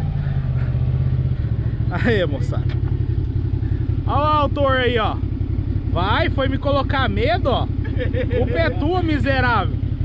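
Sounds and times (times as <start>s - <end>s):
utility vehicle engine idling: 0.0s - 10.0s.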